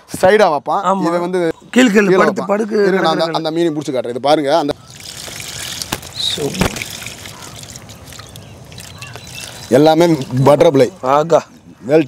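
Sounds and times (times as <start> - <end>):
water trickling and sloshing: 4.5 - 11.2.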